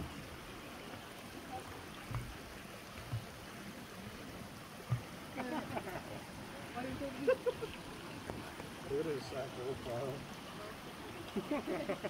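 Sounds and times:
stream flowing over stones: 0.0s - 12.0s.

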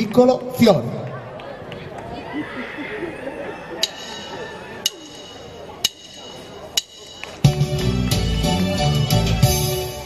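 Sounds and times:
faint background chatter: 0.7s - 8.6s
backing track: 3.8s - 10.0s.

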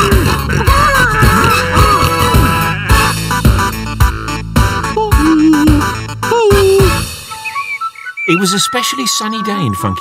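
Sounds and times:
upbeat cartoon theme music: 0.0s - 10.0s.

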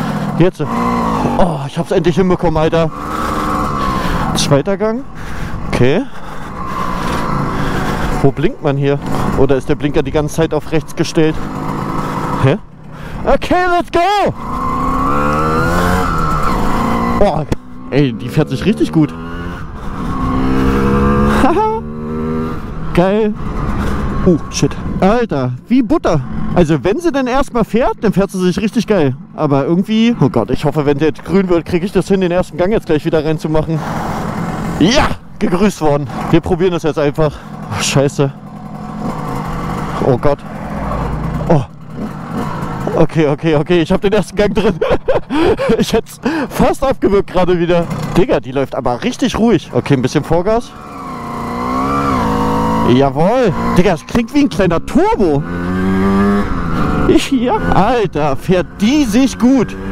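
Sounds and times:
moped engine pulling away: 0.0s - 4.6s, 6.2s - 13.1s, 14.4s - 24.7s, 36.0s - 46.6s, 47.7s - 48.2s, 50.6s - 59.9s
moped engine idling: 11.3s - 13.3s, 33.9s - 35.4s, 37.1s - 46.6s.

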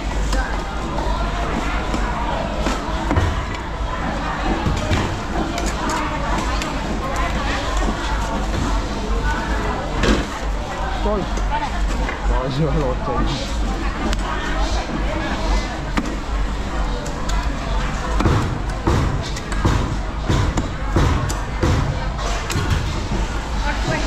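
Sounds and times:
people talking: 0.0s - 24.0s.

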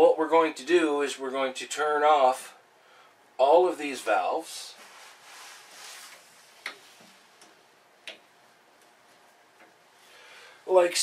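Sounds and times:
soft rustle: 4.1s - 7.8s.

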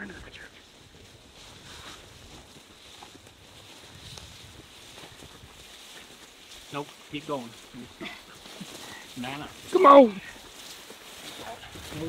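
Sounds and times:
carcass dragged through dry brush: 0.7s - 12.0s
wind rumble on microphone: 3.2s - 5.8s, 11.6s - 12.0s
person speaking: 9.2s - 10.4s.

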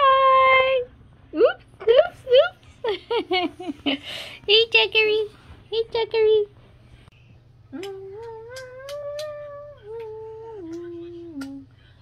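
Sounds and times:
person humming a tune: 7.7s - 11.7s.

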